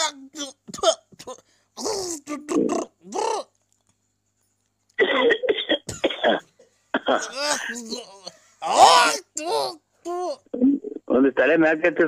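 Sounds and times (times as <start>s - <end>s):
person making vocal sounds: 0.0s - 3.8s, 7.0s - 11.0s.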